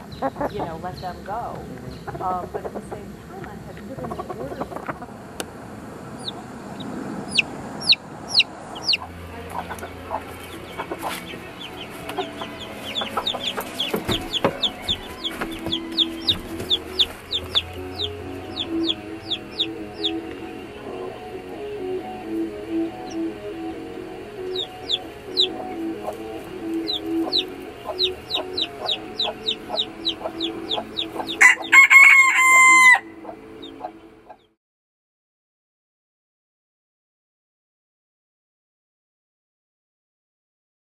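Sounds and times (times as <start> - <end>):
chickens clucking: 0.0 - 34.5
chicks peeping: 0.0 - 34.5.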